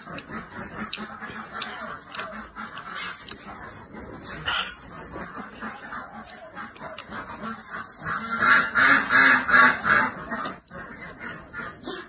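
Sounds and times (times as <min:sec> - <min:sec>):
ducks quacking: 0:00.0 - 0:12.0
slurping and chewing: 0:00.0 - 0:12.0.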